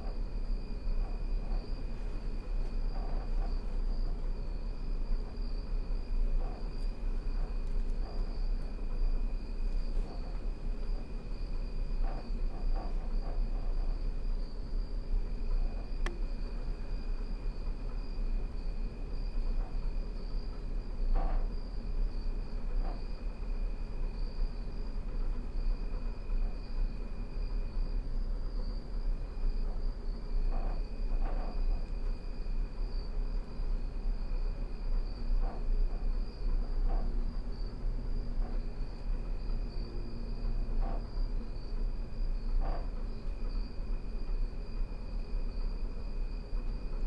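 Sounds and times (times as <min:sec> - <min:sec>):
insect trill: 0:00.0 - 0:47.0
low rumble of ambience: 0:00.0 - 0:47.0.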